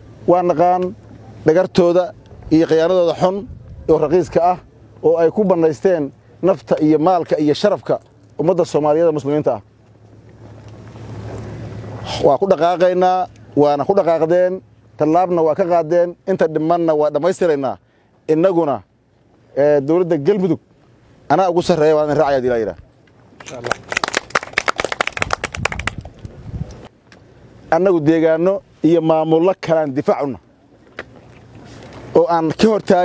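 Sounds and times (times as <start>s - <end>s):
low steady hum: 0.0s - 33.0s
wind buffeting microphone: 2.2s - 4.7s, 24.3s - 26.9s
people clapping: 23.4s - 26.3s.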